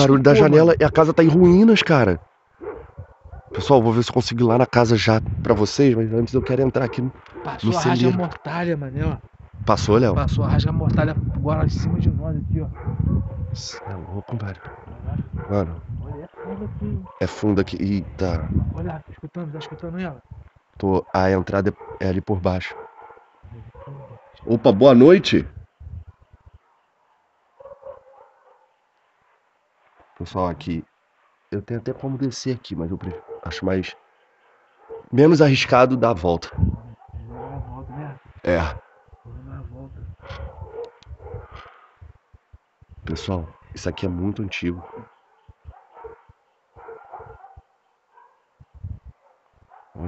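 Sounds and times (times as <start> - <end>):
distant dog barking: 2.6 - 3.8, 6.1 - 8.5, 12.7 - 18.8, 19.6 - 19.8, 20.9 - 24.7, 26.1 - 28.8, 33.0 - 39.4, 40.1 - 42.1, 43.1 - 50.0
soft low thumps: 14.6 - 17.1, 18.0 - 20.5.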